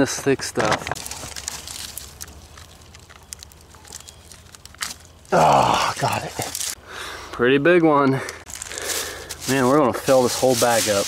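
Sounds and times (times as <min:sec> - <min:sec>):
twigs snapping: 0:00.6 - 0:06.8, 0:08.5 - 0:11.0
dry leaves rustling and crackling: 0:01.0 - 0:06.8, 0:08.5 - 0:11.0.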